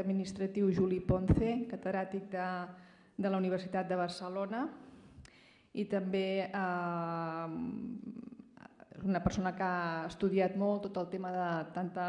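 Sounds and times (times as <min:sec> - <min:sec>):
woman speaking: 0:00.0 - 0:04.8, 0:05.8 - 0:12.0.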